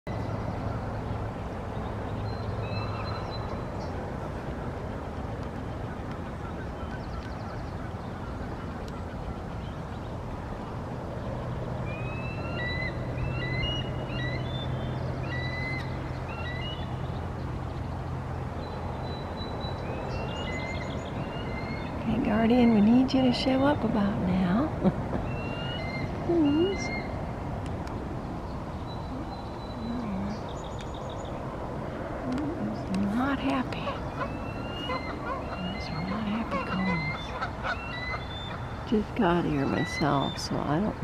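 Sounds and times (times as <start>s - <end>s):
steady low hum: 0.1s - 41.0s
eagle chittering calls: 11.8s - 17.2s, 19.0s - 23.6s, 25.2s - 27.2s, 33.0s - 41.0s.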